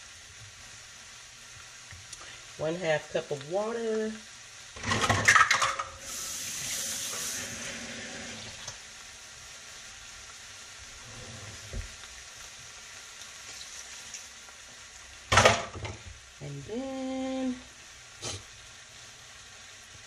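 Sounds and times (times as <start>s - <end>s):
meat and vegetables sizzling: 0.0s - 20.0s
water hissing in hot pan: 0.0s - 20.0s.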